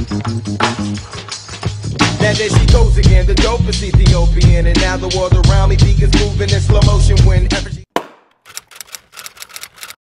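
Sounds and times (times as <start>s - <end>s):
typewriter keys clacking: 8.5s - 10.0s.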